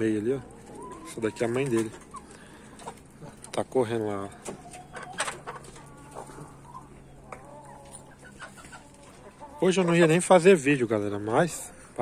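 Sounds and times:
chicken calls: 0.0 - 12.0
chickens clucking: 0.0 - 12.0.

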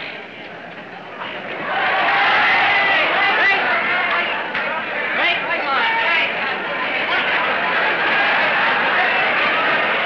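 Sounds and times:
crowd shouting and chattering: 0.0 - 10.0.

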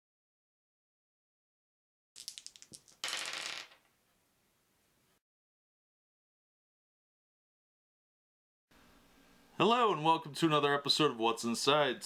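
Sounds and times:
dice rattling on wooden table: 2.2 - 3.9.

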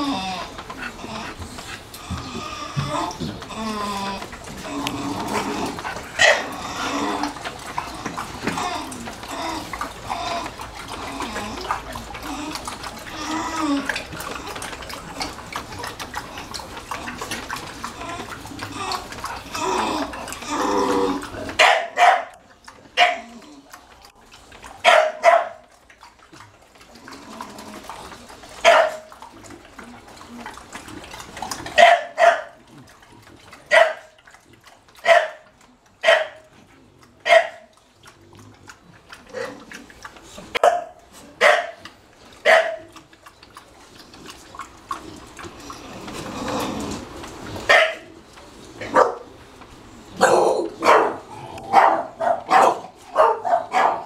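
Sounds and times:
water rushing from hose: 0.0 - 54.0
dogs barking: 5.7 - 8.7, 21.4 - 23.4, 24.7 - 25.8, 28.6 - 29.2, 31.6 - 32.8, 33.6 - 34.2, 35.0 - 36.5, 37.2 - 37.8, 40.5 - 43.0, 47.6 - 48.2, 48.8 - 49.4, 50.2 - 54.0.

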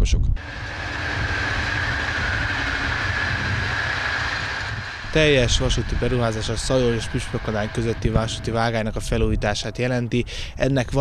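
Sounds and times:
train wheels rumbling on rail: 0.4 - 11.0.

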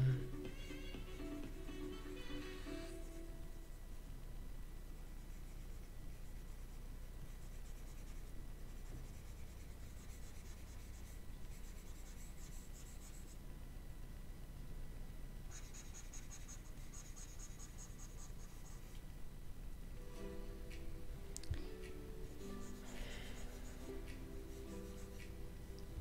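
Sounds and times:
faint low hum: 0.0 - 26.0
stylus scratching on tablet: 5.1 - 13.4, 15.5 - 19.0, 22.2 - 25.4.

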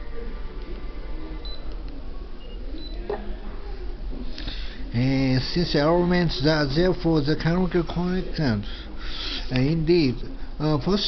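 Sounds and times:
low electrical hum: 0.0 - 11.0
faint high-pitched beeps: 1.4 - 1.8, 2.4 - 3.2.

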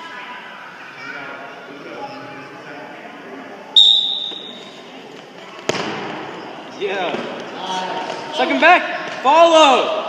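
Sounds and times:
voices in a gym: 0.0 - 10.0
referee's whistle blast: 3.8 - 4.6.

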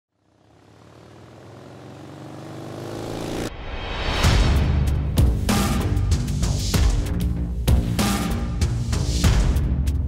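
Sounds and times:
motorcycle engine running: 0.1 - 3.5.

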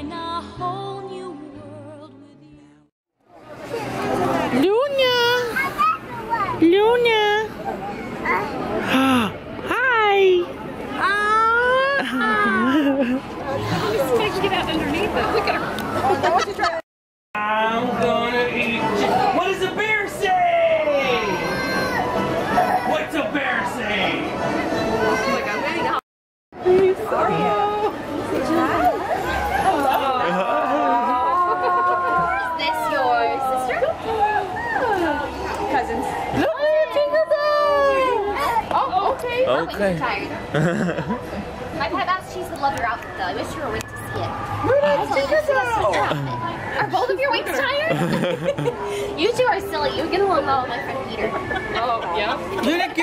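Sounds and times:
overlapping voices chattering: 3.3 - 16.8, 26.6 - 53.0.

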